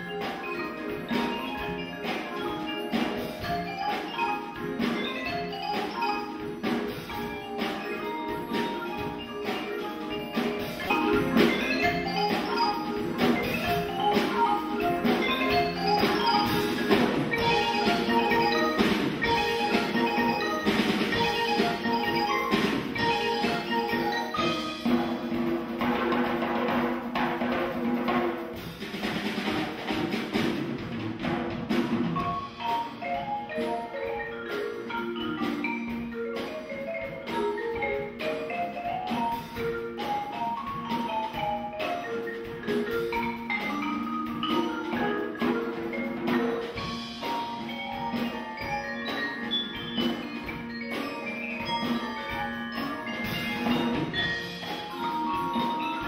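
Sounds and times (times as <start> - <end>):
drum kit: 0.0 - 56.0
hand drum: 0.0 - 56.0
marimba melody: 0.0 - 56.0.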